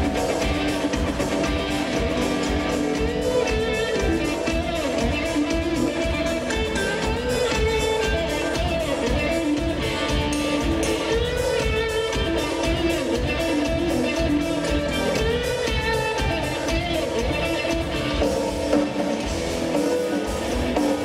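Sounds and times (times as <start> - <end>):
bass guitar: 0.0 - 21.0
drum kit beat: 0.0 - 21.0
electric guitar with bent notes: 0.0 - 21.0.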